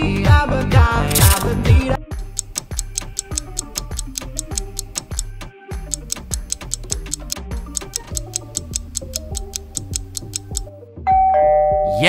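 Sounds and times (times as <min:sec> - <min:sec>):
clock-like ticking: 0:02.2 - 0:10.7
countdown timer music: 0:02.2 - 0:10.7.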